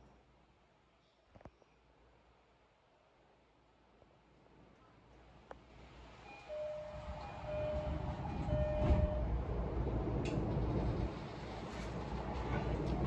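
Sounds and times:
train running noise: 5.8s - 13.0s
two-tone train door chime: 6.3s - 9.4s
train doors shutting knock: 6.8s - 9.3s.

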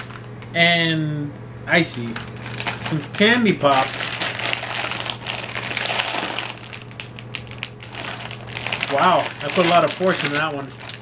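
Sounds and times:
plastic snack bag crinkling: 0.0s - 0.4s, 1.9s - 11.0s.

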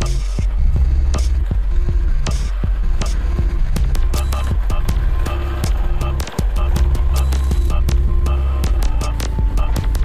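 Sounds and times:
deep bass drone: 0.0s - 10.0s
held higher tones: 0.0s - 10.0s
sharp clicking percussion: 0.0s - 10.0s.

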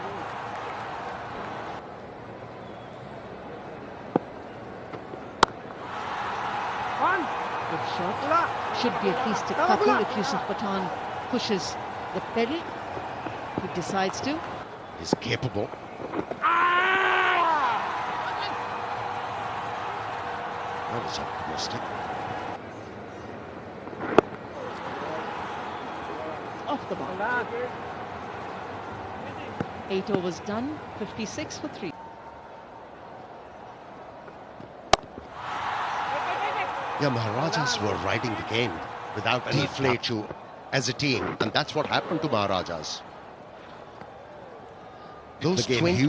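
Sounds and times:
crowd background noise: 0.0s - 46.0s
low ambient noise: 0.0s - 46.0s.

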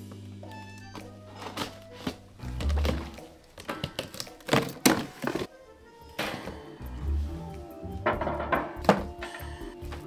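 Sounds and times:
background music: 0.0s - 10.0s
cardboard scraping: 1.3s - 5.5s.

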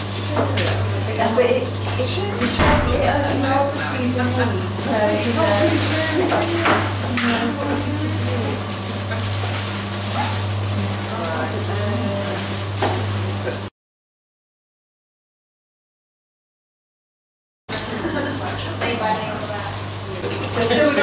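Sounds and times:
low electrical hum: 0.0s - 13.6s
people chattering: 17.7s - 21.0s.

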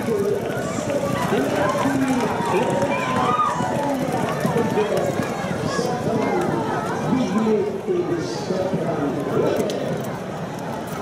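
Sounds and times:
man calling race over loudspeaker: 0.0s - 10.0s
galloping hooves on turf: 0.0s - 11.0s.

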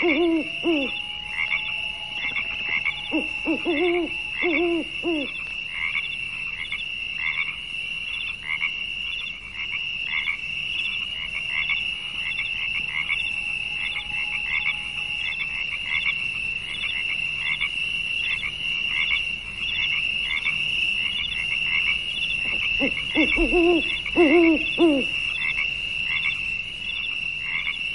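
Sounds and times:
animal chirps: 0.0s - 5.5s, 22.2s - 25.6s.

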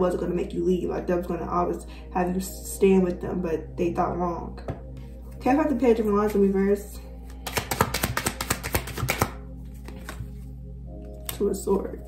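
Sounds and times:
soft background music: 0.0s - 12.0s
cards being shuffled: 7.2s - 10.5s.

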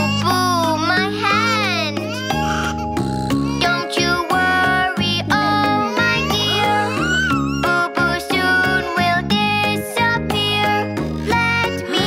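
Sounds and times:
cartoon baby crying: 0.0s - 9.8s
cheerful children's music: 0.0s - 12.0s.

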